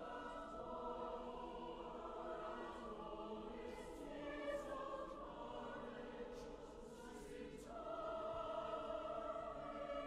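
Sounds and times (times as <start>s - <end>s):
mixed choir singing chords: 0.0s - 10.0s.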